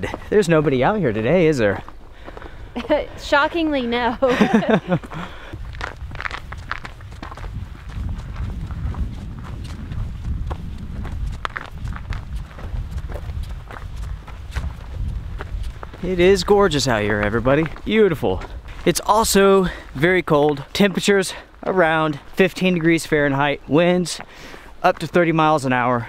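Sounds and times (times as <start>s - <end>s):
footsteps on icy rocky trail: 0.0s - 25.8s
wind rumble on microphone: 5.6s - 19.4s.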